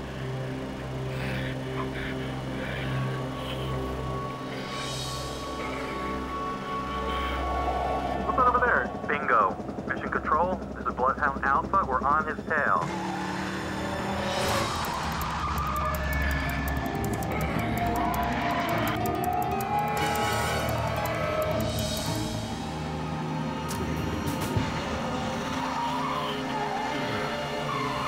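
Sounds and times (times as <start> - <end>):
film score: 0.0 - 28.0.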